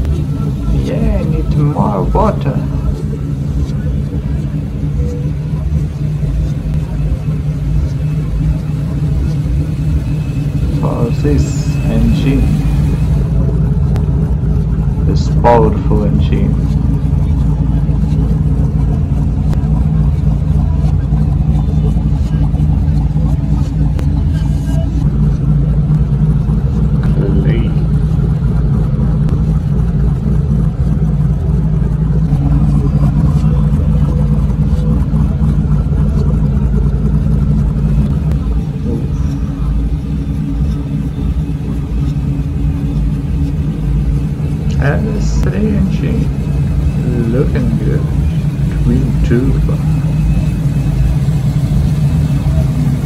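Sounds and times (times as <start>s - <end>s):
car engine idling: 0.0s - 53.0s.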